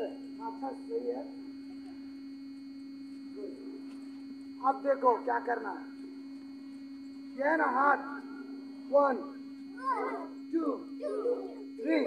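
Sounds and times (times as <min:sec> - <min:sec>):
low hum: 0:00.0 - 0:12.0
children shouting: 0:09.8 - 0:10.4, 0:11.0 - 0:11.7.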